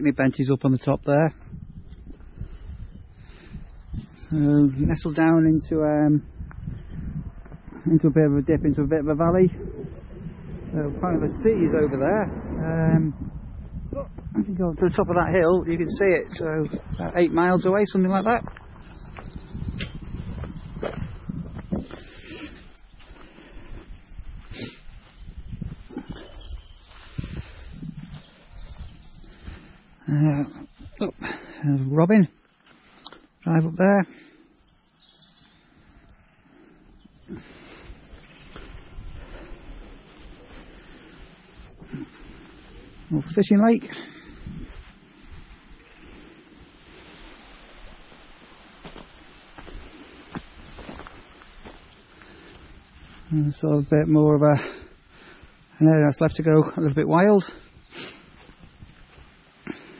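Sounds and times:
wind rumbling on microphone: 0:00.0 - 0:59.9
footsteps crunching on gravel: 0:17.5 - 0:29.8, 0:37.4 - 0:59.9.

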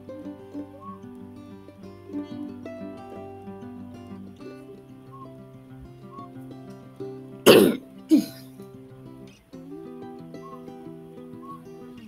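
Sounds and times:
soft instrumental music: 0:00.0 - 0:12.0
person coughing: 0:07.5 - 0:08.5.

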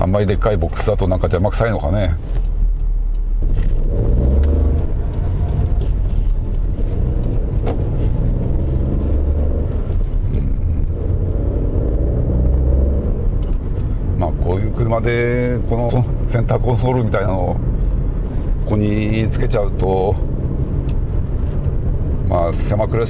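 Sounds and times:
car engine: 0:00.0 - 0:23.0
road noise: 0:00.0 - 0:23.0.

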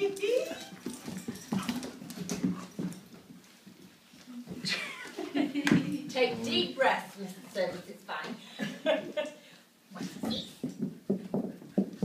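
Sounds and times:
scuffling on hard floor: 0:00.0 - 0:04.7, 0:10.0 - 0:12.0.

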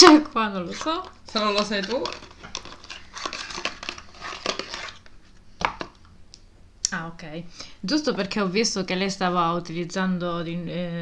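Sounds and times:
cardboard box packaging rustling: 0:00.7 - 0:05.0.

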